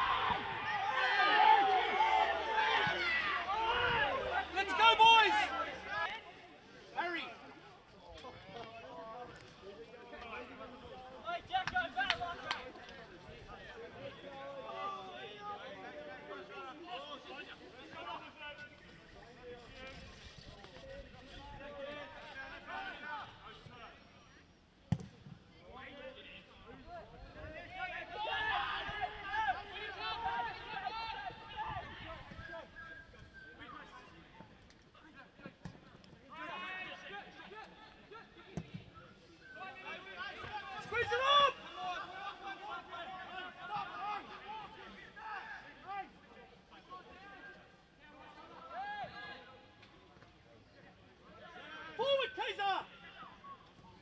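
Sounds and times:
men calling and shouting: 0.0s - 20.0s, 25.7s - 34.4s, 36.2s - 49.9s, 51.2s - 54.0s.

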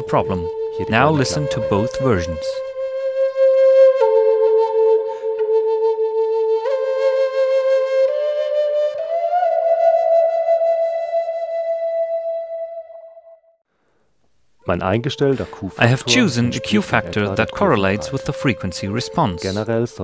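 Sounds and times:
solo flute melody: 0.0s - 13.6s, 15.8s - 20.0s.

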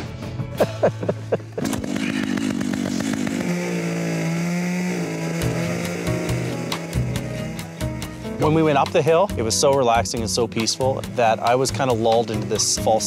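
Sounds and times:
music: 0.0s - 1.6s, 5.4s - 13.0s
chainsaw engine running winch: 1.6s - 8.9s, 10.3s - 13.0s.

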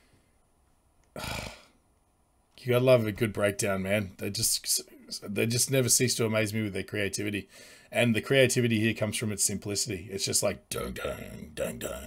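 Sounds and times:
man's breathy vocal sound: 1.2s - 1.8s.

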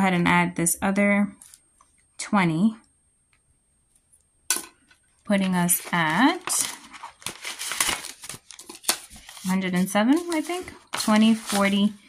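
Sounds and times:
paper rustle: 5.4s - 12.0s.

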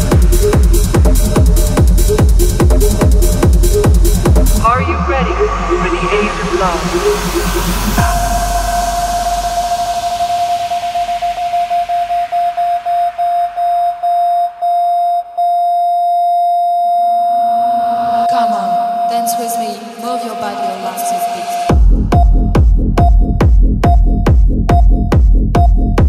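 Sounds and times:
stuttering held synth tone: 0.2s - 14.1s, 17.2s - 22.4s
rising noise sweep: 4.5s - 13.7s.

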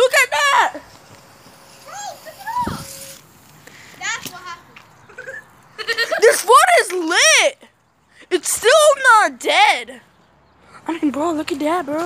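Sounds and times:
children's high-pitched wordless calls: 1.8s - 3.2s, 4.0s - 7.7s.

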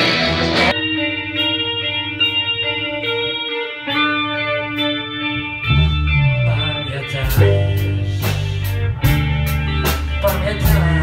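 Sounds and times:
bass guitar: 0.0s - 11.0s
electric guitar chord: 0.0s - 11.0s
drums with cymbal strikes: 7.2s - 11.0s.

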